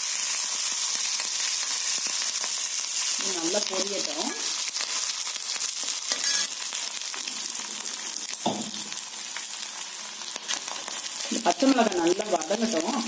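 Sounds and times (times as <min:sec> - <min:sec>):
oil sizzling in a pan: 0:00.0 - 0:13.0
steel spatula stirring: 0:06.1 - 0:06.5.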